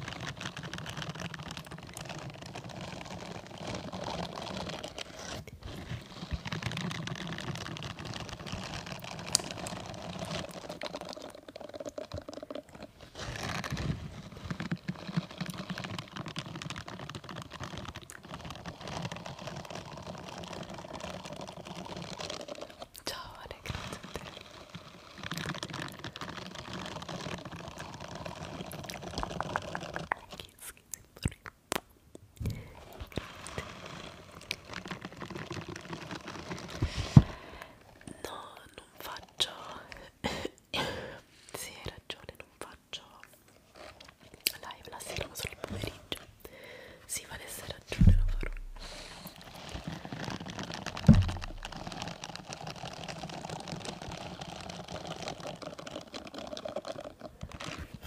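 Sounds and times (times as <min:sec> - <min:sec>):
scrubbing glove scratching microphone: 0:00.0 - 0:30.7, 0:32.5 - 0:39.9, 0:47.2 - 0:58.0.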